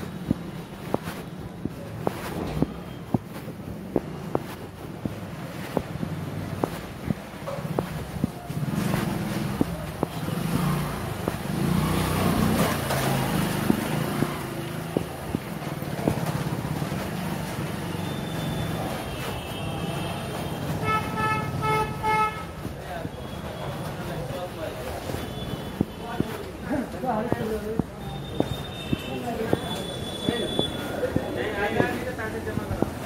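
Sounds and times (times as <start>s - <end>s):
vehicle engines rumbling: 0.0s - 33.0s
vehicle horn beeps: 17.9s - 22.5s, 28.0s - 31.4s.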